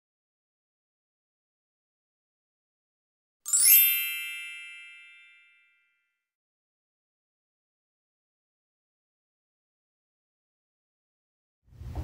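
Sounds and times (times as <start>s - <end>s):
bright sparkling chime: 3.5s - 6.0s.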